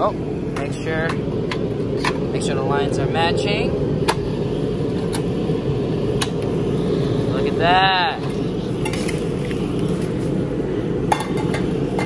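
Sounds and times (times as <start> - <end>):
gas burner lighting: 0.0 - 12.0
steady low rumble: 0.0 - 12.0
piezo igniter clicking: 6.1 - 6.6.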